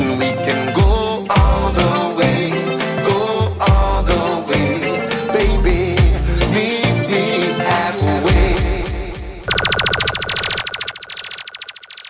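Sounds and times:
rapid electronic stutter effect: 9.5 - 12.0.

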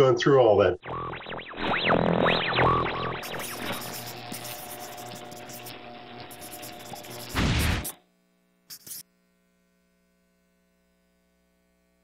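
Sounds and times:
pen scratching on paper: 3.2 - 8.0, 8.7 - 9.0.

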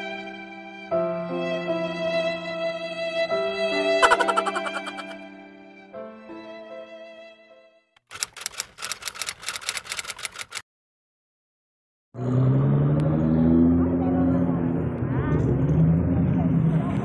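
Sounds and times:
car engines revving: 12.2 - 17.0.

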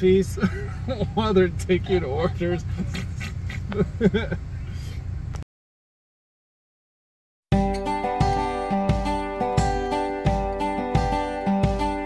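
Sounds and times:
idling car hum: 0.0 - 5.4
people laughing: 0.4 - 4.4.

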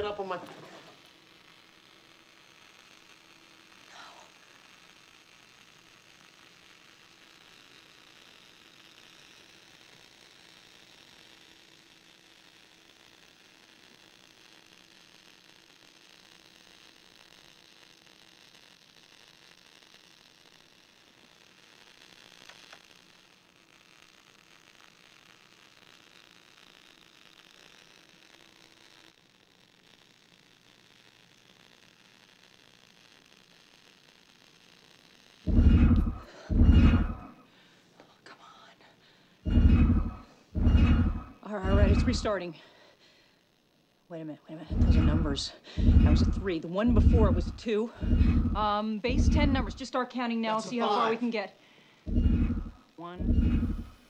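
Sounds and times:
faint low hum: 35.5 - 54.0.

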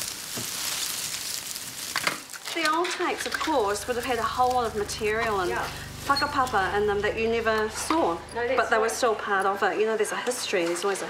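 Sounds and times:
videotape rustling and crackling: 0.0 - 8.0.

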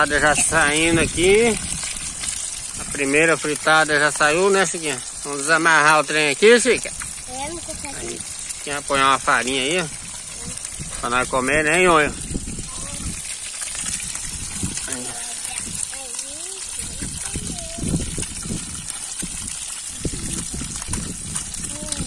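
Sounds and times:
creek water running: 0.0 - 22.0.

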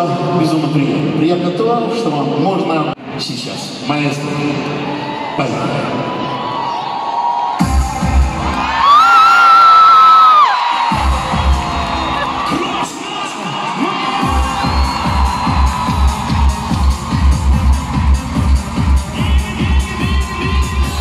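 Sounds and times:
crowd cheering and shouting: 4.2 - 21.0
loud pop-dance music: 7.6 - 9.7, 10.3 - 21.0.

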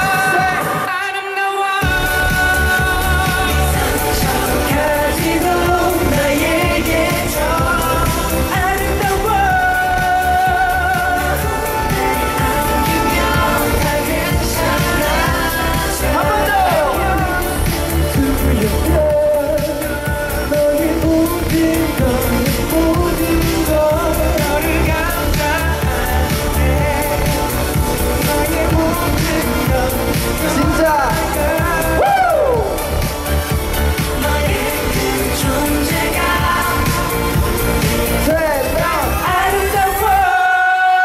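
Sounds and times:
man singing into microphone: 0.0 - 41.0
pop backing track with beat: 0.0 - 41.0.

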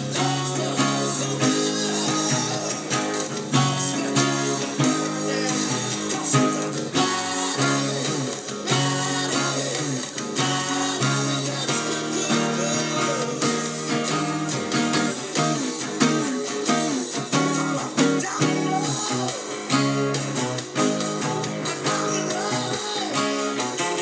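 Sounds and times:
acoustic guitar strumming: 0.0 - 24.0
acoustic rock band recording: 0.0 - 24.0.

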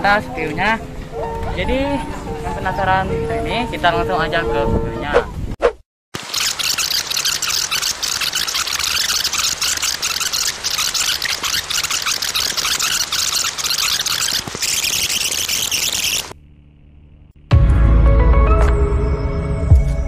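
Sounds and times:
crackling rewind hiss with clicks: 6.2 - 16.4.

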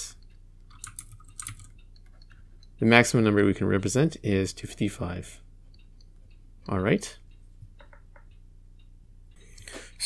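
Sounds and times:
stylus tapping and scratching tablet: 0.2 - 2.8, 7.6 - 8.4.

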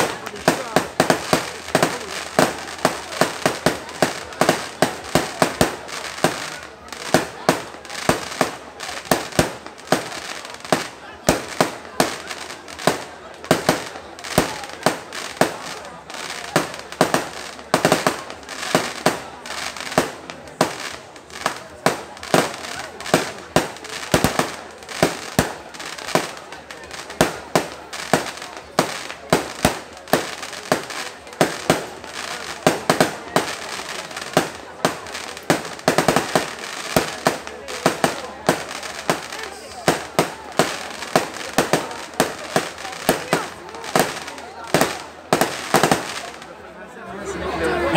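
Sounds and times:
fireworks bangs: 0.0 - 46.5
fireworks crackle: 0.0 - 46.6.

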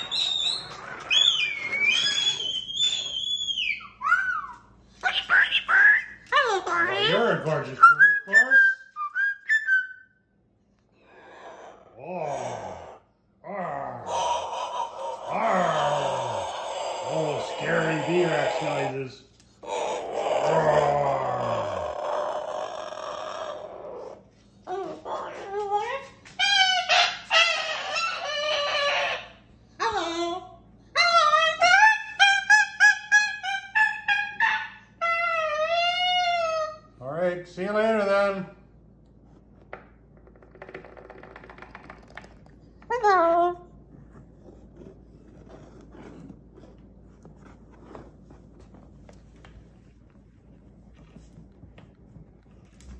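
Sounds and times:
cockatoo whistling: 0.0 - 4.7, 7.8 - 10.2
cockatoo voice-like call: 11.3 - 30.4.

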